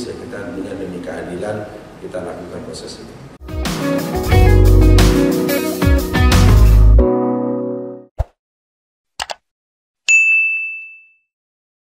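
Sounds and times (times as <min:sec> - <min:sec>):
notification bell ding: 0:10.1 - 0:11.3.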